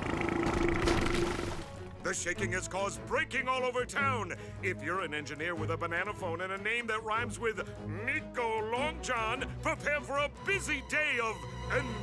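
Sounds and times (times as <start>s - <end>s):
background music with low note: 0.6s - 12.0s.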